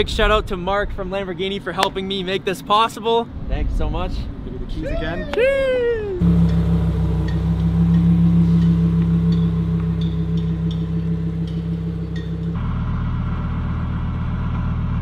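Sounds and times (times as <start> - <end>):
car engine pulling away: 6.1 - 15.0.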